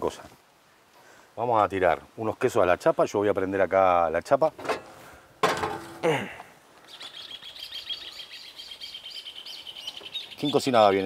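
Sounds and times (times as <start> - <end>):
birds chirping: 6.0 - 11.0.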